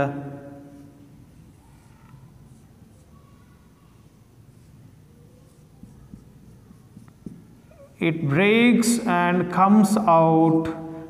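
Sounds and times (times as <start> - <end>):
marker drawing on whiteboard: 0.0 - 9.0
marker squeak: 0.7 - 8.0.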